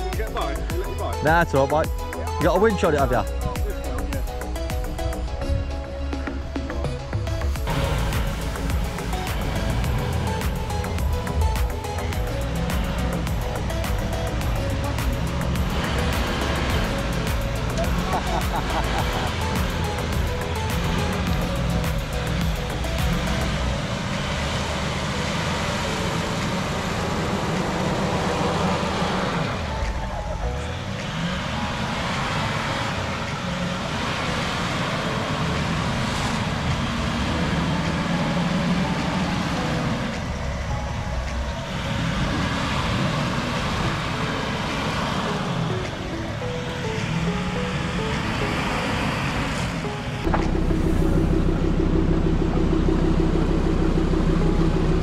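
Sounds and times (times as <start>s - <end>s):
background music: 0.0s - 55.0s
engine working under load: 0.0s - 55.0s.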